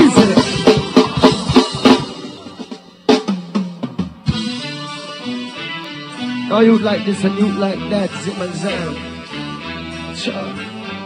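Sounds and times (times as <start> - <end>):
drum hits: 0.0 - 4.7
live reggae band: 0.0 - 11.0.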